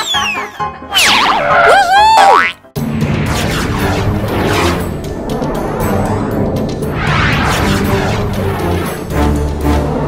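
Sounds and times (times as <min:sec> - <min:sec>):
cartoon boing sound effect: 0:01.0 - 0:02.6
dense noisy music: 0:02.8 - 0:10.0.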